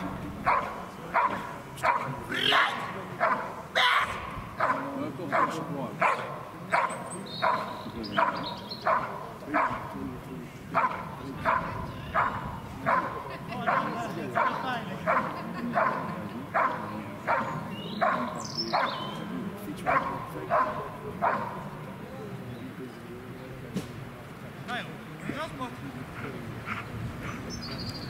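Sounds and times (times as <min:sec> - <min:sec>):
young dog barking: 0:00.4 - 0:09.9, 0:10.7 - 0:19.0, 0:19.8 - 0:21.7.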